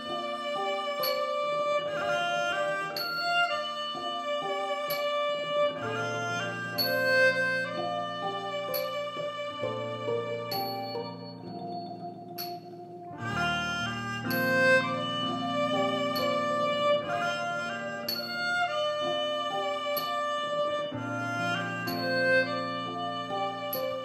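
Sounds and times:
sustained melody line: 0:00.0 - 0:24.0
wooden xylophone: 0:00.0 - 0:24.0.

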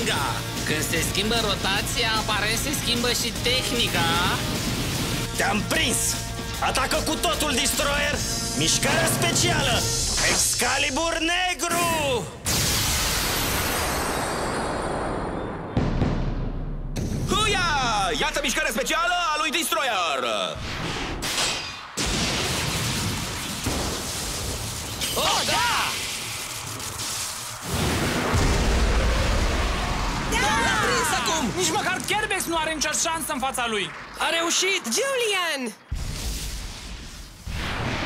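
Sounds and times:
deeper blast: 0:12.4 - 0:18.8, 0:20.6 - 0:34.5, 0:35.9 - 0:38.0
loud rushing blast with hiss: 0:25.8 - 0:30.4, 0:35.9 - 0:38.0
voices shouting: 0:29.8 - 0:32.0.

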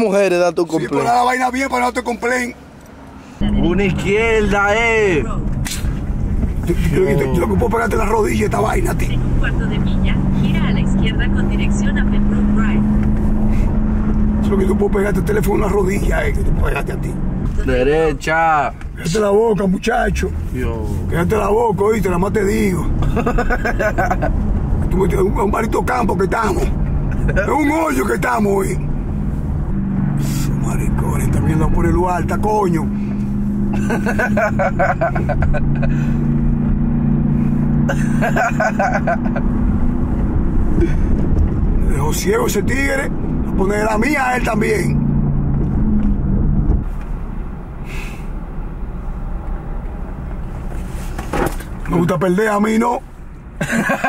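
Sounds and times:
car interior rumble: 0:00.0 - 0:54.0
person laughing: 0:23.0 - 0:24.4, 0:27.1 - 0:27.5, 0:33.7 - 0:36.3, 0:37.9 - 0:39.5, 0:53.6 - 0:54.0.

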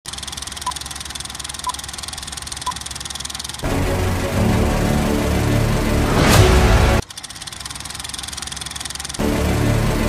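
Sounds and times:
film projector clatter: 0:00.1 - 0:03.6, 0:07.0 - 0:09.2
low hum: 0:03.6 - 0:07.0
music: 0:03.6 - 0:07.0, 0:09.2 - 0:10.0.

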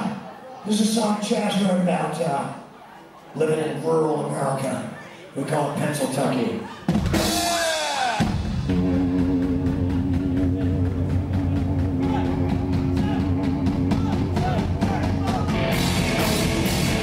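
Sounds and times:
drum kit beat: 0:06.8 - 0:17.0
live rock band playing: 0:06.8 - 0:17.0.

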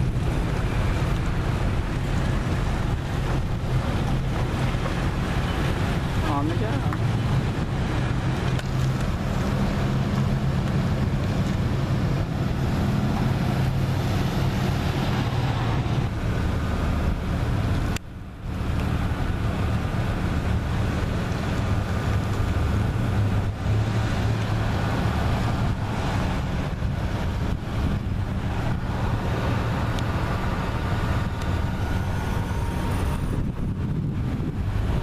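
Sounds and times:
vehicle noise: 0:00.0 - 0:35.0
wind on microphone: 0:00.0 - 0:35.0.

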